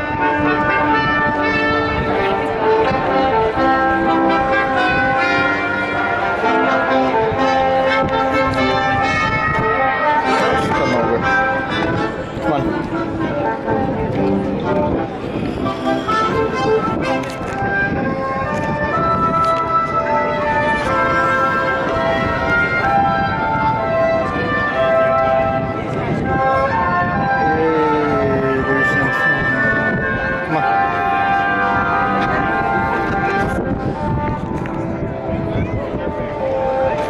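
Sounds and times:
brass band music: 0.0 - 37.0
crowd chatter: 0.0 - 37.0.

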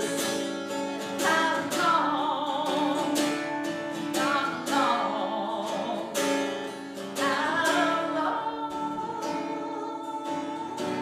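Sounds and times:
strummed acoustic guitar: 0.0 - 11.0
woman singing folk song: 0.0 - 11.0.

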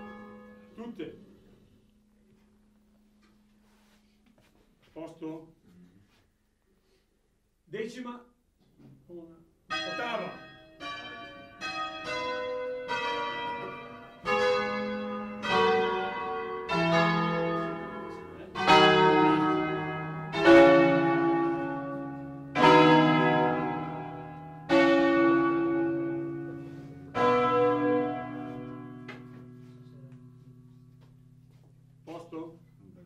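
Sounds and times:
church bell strikes: 0.0 - 1.0, 9.7 - 31.4.

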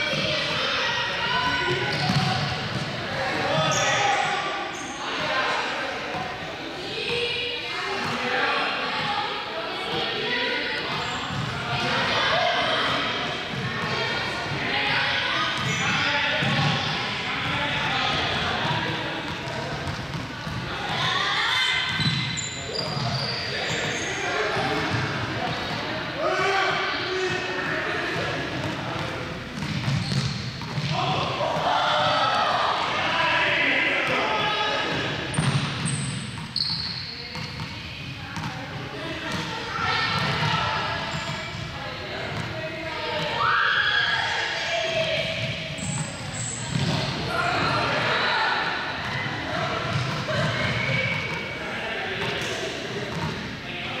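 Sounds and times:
indistinct echoing voices: 0.0 - 54.0
ball bouncing on hard floor: 35.3 - 36.6, 53.1 - 53.4.

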